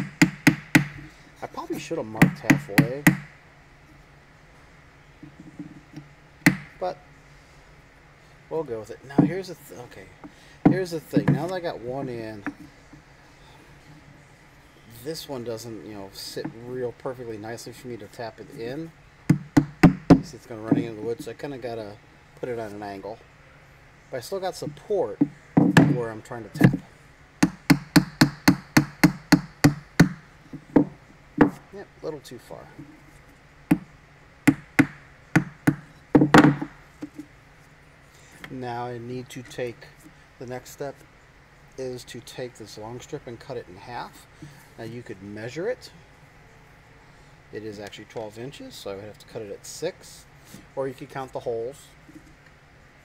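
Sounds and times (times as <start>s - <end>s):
hammer tapping wooden dowel: 10.6s - 11.5s, 19.3s - 20.8s.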